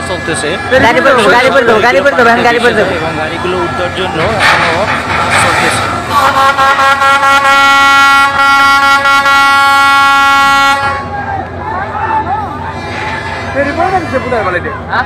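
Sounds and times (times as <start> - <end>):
long steady horn blast: 5.9 - 11.3, 12.6 - 14.7
people shouting: 10.6 - 15.0.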